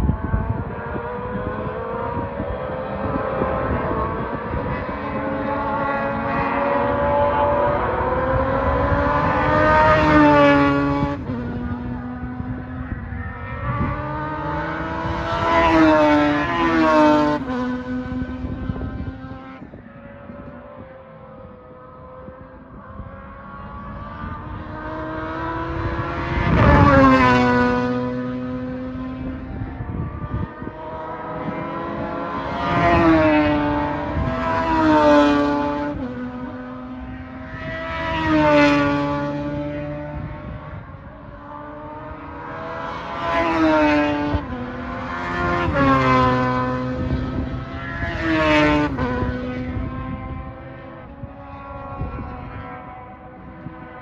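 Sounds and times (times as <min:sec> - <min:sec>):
race cars passing at speed: 0:00.0 - 0:54.0.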